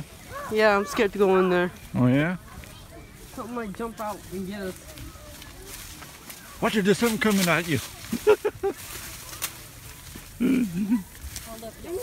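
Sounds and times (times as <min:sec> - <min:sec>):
quieter voices: 0:00.0 - 0:12.0.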